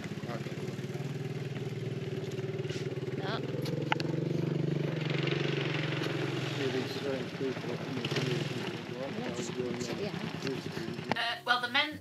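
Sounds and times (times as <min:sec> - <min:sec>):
quad bike engine running: 0:00.0 - 0:11.9.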